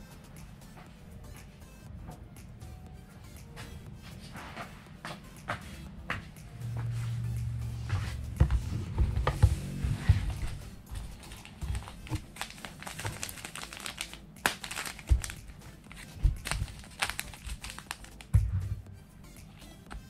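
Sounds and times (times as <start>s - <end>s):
plastic crinkling: 11.0s - 18.4s.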